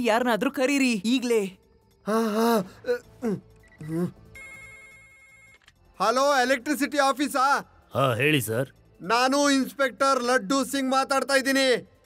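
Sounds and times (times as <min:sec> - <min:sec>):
electronic telephone ringing: 0:04.4 - 0:05.6.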